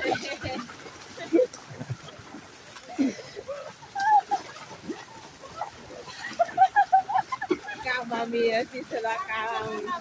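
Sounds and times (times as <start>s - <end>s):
people wading through water: 0.0s - 10.0s
people laughing: 6.0s - 8.1s.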